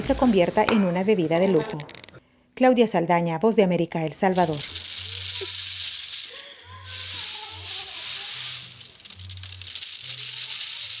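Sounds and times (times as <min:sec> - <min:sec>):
coffee beans trickling into plastic bag: 0:04.3 - 0:11.0.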